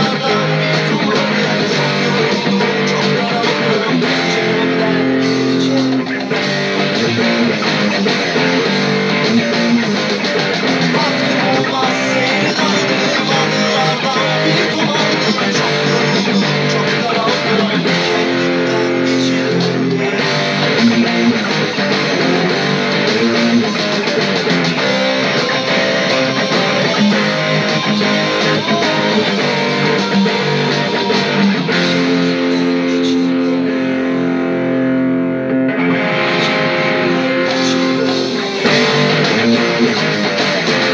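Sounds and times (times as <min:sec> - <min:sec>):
band backing track: 0:00.0 - 0:40.9
electric guitar playing rock: 0:00.0 - 0:40.9.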